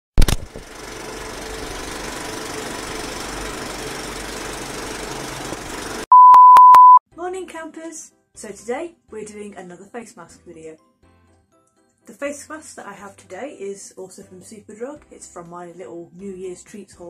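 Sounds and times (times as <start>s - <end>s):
sharp pop: 0.2s - 0.6s
loud steady beep: 6.1s - 7.0s.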